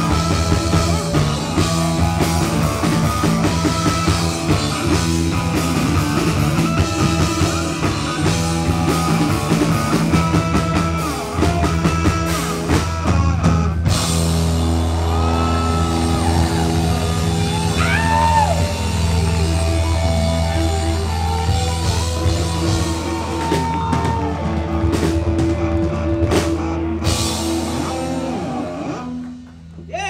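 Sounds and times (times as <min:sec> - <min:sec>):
live rock band playing loud: 0:00.0 - 0:30.0.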